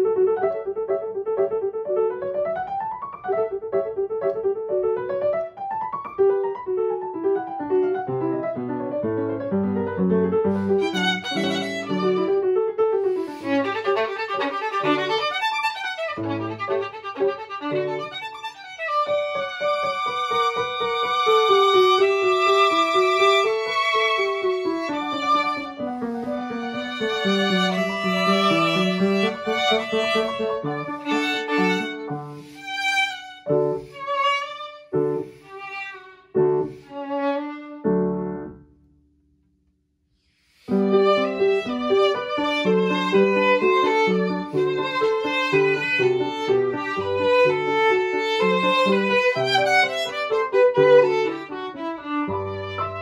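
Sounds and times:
piano playing: 0.0s - 39.0s, 40.6s - 53.0s
violin playing: 9.6s - 38.4s, 40.6s - 53.0s.

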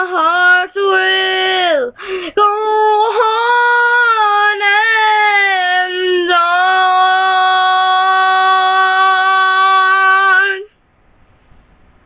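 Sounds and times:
girl singing a long note: 0.0s - 10.7s.

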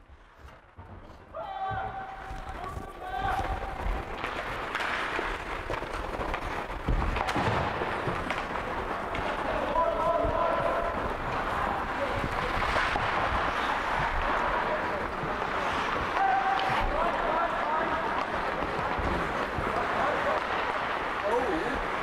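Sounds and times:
ice hockey game din: 0.0s - 22.0s.

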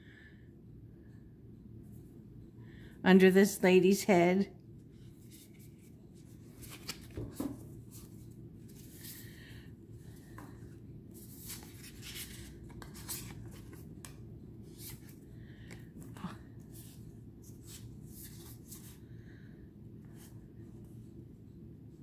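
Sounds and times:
cards sliding and flicking: 6.5s - 8.1s.

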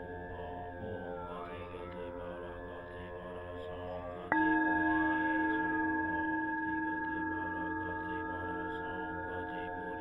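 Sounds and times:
ambient meditation music: 0.0s - 10.0s.

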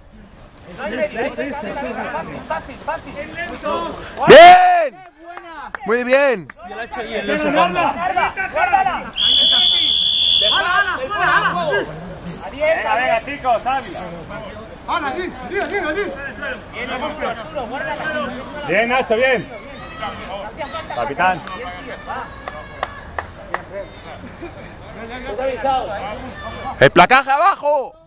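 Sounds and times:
referee's whistle blast: 9.2s - 10.7s
person clapping hands: 22.4s - 23.7s.

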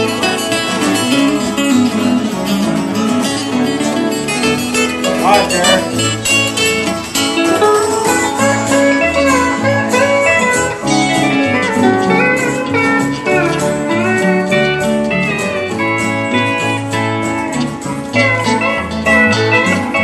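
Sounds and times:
lead guitar: 0.0s - 20.0s
live country band playing: 0.0s - 20.0s.

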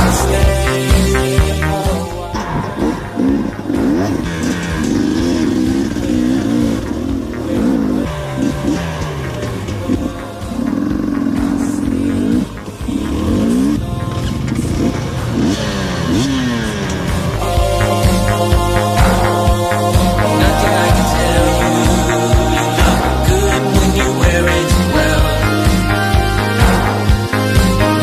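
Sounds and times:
background music: 0.0s - 28.0s
motorcycle engine revving: 0.0s - 28.0s.

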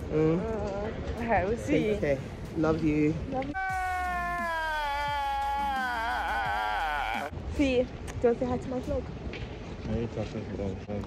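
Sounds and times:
high-pitched wailing cry: 3.6s - 7.3s.

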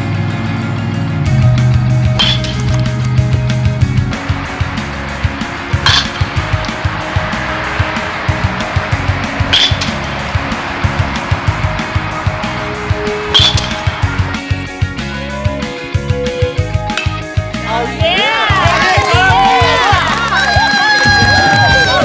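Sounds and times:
rock music: 0.0s - 22.0s
metal bat striking balls: 1.3s - 17.6s.

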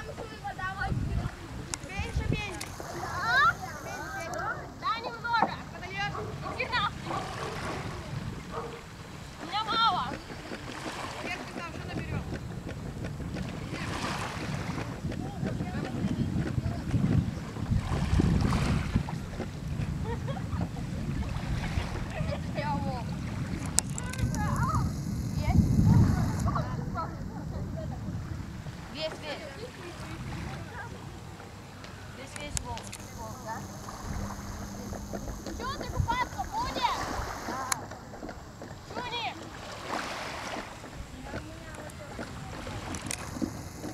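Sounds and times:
water at shoreline: 0.0s - 43.9s
wind buffeting microphone: 0.0s - 43.9s
high sliding calls: 2.4s - 4.4s, 32.9s - 37.8s
distant high calls: 2.6s - 15.0s, 32.9s - 43.9s
steady low hum: 22.4s - 43.9s.

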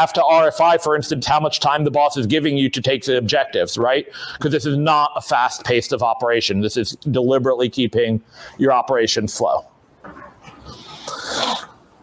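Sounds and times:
man breathing in: 4.1s - 4.4s.

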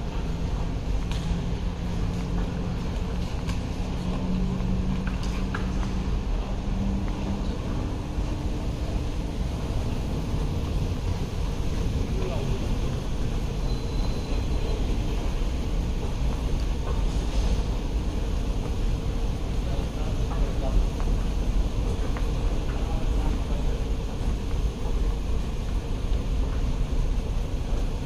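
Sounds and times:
terminal low rumble: 0.0s - 28.0s.

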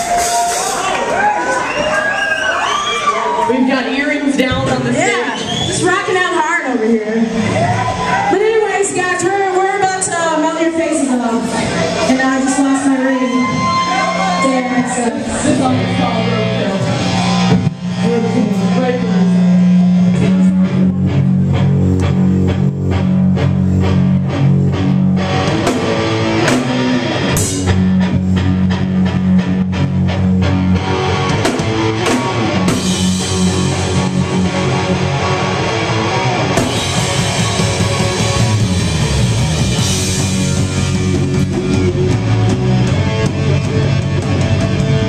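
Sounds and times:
live rock band playing loud: 0.0s - 2.7s, 3.3s - 45.0s.

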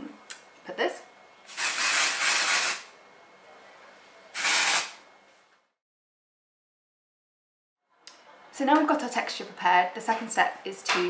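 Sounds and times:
aerosol can spraying: 1.5s - 2.8s, 4.4s - 5.0s.

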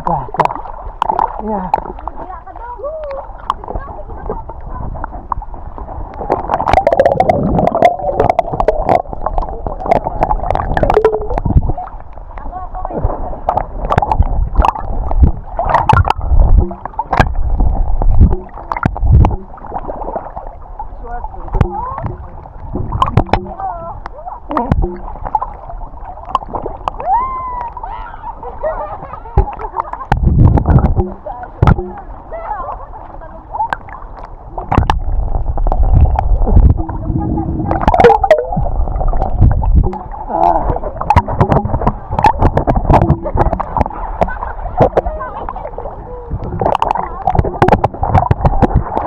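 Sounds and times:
small splashes and drips: 0.0s - 4.4s, 5.0s - 28.0s
deep muffled underwater rumble: 0.0s - 49.0s
seawater sloshing and gurgling: 0.0s - 49.0s.

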